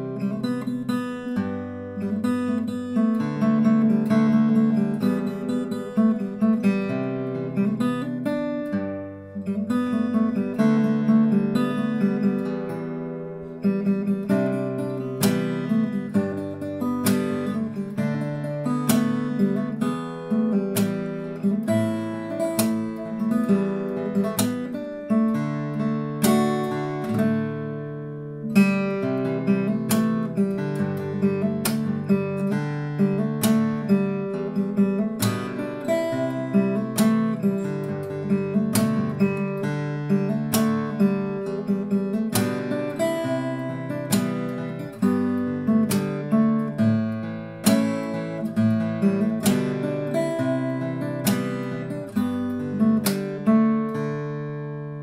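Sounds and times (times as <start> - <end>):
fingerstyle acoustic guitar: 0.0 - 55.0.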